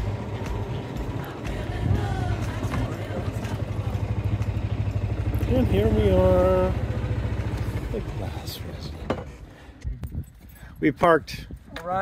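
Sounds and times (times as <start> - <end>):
golf cart engine drone: 0.0 - 9.9.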